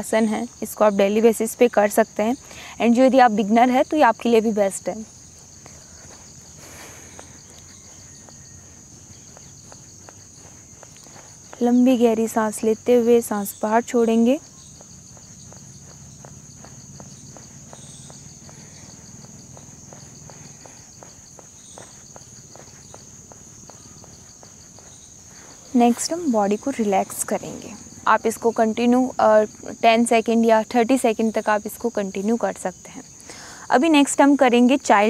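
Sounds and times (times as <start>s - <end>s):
insects trilling: 0.0s - 35.0s
faint regular ticks: 3.7s - 34.2s.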